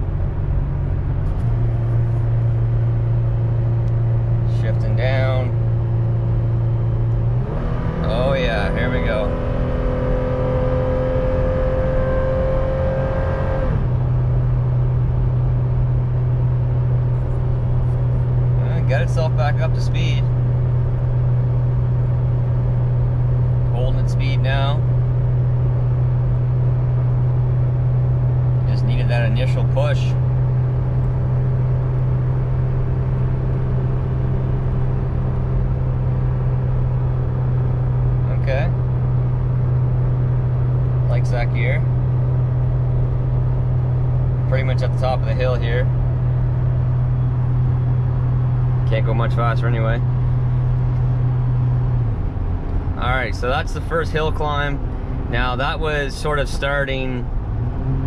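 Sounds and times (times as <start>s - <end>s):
engine droning under load: 0.0s - 58.0s
road noise: 0.0s - 58.0s.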